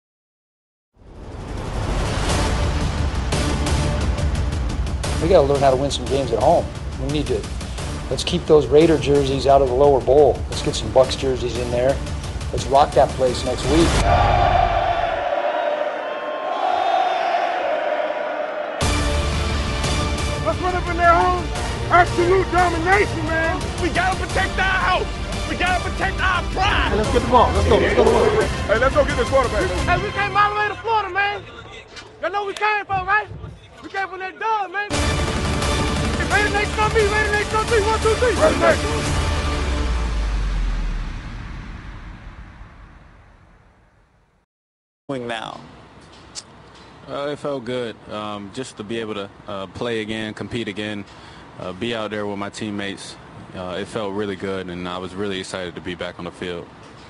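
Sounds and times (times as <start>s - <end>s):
stadium crowd cheering and chanting: 13.8s - 19.6s, 23.2s - 35.0s, 36.2s - 39.1s
low music bass: 19.0s - 30.4s, 35.7s - 41.7s
deep low rumble: 39.6s - 43.9s.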